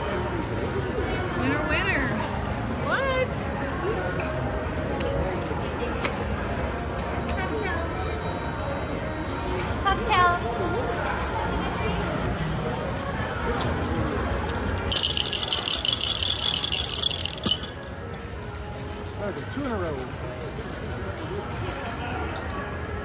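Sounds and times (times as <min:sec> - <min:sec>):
high-pitched ringing jingle: 0:07.2 - 0:10.2, 0:14.9 - 0:22.0.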